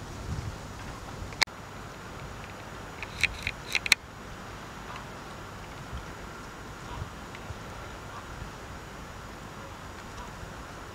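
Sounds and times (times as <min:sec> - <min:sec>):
outdoor background noise: 0:00.0 - 0:10.9.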